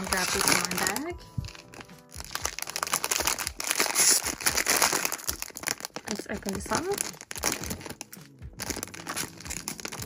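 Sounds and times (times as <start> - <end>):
foil bag crinkling: 0.0 - 10.0.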